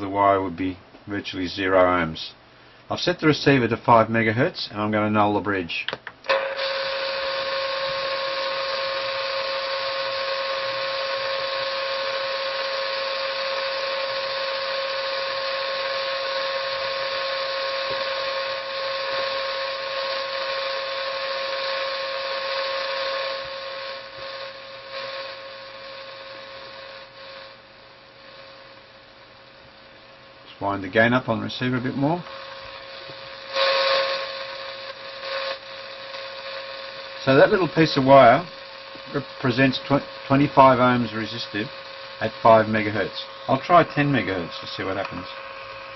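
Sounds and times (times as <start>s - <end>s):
radio speaker hiss: 0.0s - 29.3s, 30.4s - 45.9s
steady tone: 30.6s - 45.9s.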